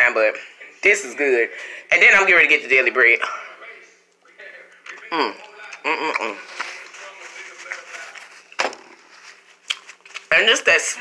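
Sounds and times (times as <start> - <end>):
person eating mouth sounds: 4.8 - 6.5.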